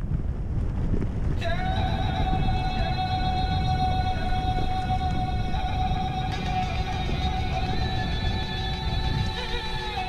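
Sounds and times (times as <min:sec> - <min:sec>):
wind rumble on microphone: 0:00.0 - 0:10.0
background music held chord: 0:01.4 - 0:10.0.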